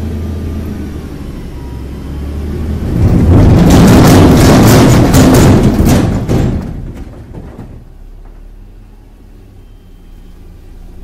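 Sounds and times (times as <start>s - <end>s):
boulders crashing onto ground: 2.9s - 8.4s.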